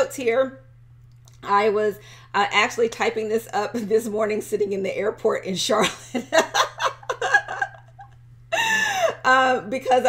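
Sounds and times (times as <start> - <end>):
woman laughing: 5.7 - 9.6.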